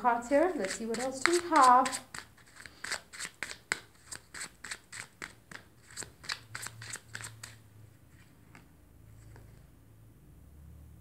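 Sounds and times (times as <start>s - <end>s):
cards being shuffled: 0.5s - 9.6s.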